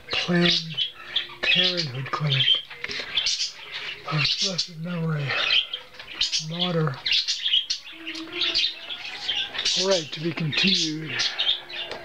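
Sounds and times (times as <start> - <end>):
small birds chirping: 0.0 - 12.0.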